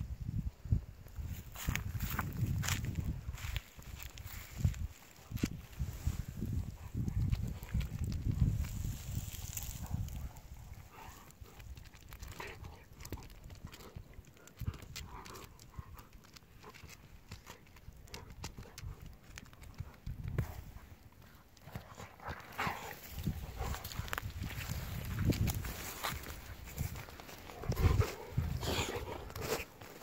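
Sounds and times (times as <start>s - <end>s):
dog paws scuffing on gravel: 22.2s - 30.0s.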